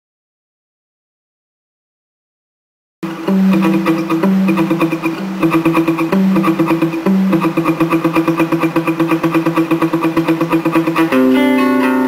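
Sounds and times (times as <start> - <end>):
fingerpicked acoustic guitar: 3.1 - 12.0.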